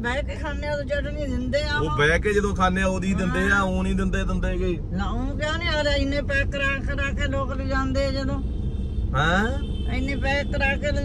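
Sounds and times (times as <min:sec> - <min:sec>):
woman talking: 0:00.0 - 0:01.8, 0:04.9 - 0:08.4, 0:09.9 - 0:11.0
car engine and road noise: 0:00.0 - 0:11.0.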